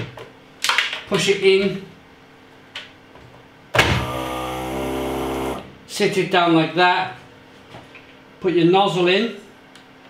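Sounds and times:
small electric motor humming: 3.8 - 5.8.

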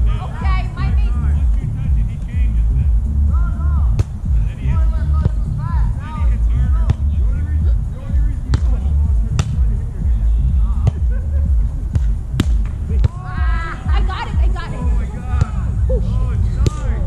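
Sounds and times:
steady low rumble: 0.0 - 17.0
voices calling out: 0.0 - 17.0
volleyball slaps: 3.9 - 4.2, 6.8 - 7.1, 8.5 - 8.8, 9.4 - 9.6, 11.9 - 13.2, 16.6 - 17.0.

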